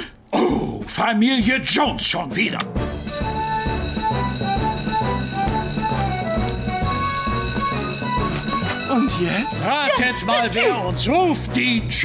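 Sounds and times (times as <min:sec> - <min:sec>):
alarm bells ringing: 0:03.0 - 0:10.4.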